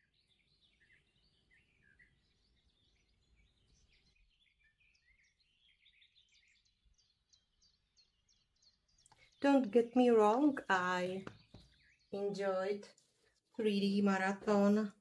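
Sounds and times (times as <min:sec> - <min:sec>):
faint bird chirps: 0:00.0 - 0:15.0.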